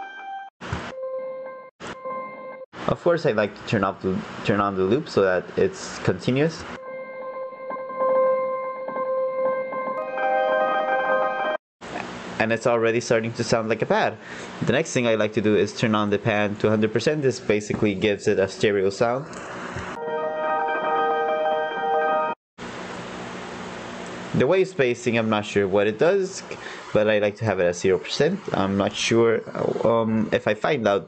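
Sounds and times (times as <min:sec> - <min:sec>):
granular piano pad tone: 0:00.9 - 0:02.6, 0:06.8 - 0:11.6, 0:20.0 - 0:22.4
higher tones: 0:06.8 - 0:11.6.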